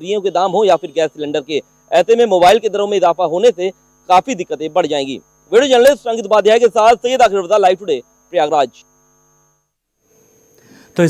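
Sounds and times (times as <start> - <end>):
man speaking: 0.0 - 8.8
electrical hum: 0.0 - 11.0.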